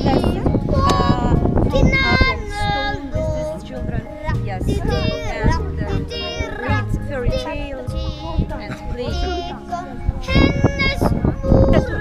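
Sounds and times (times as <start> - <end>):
children singing together: 0.0 - 3.7, 4.7 - 12.0.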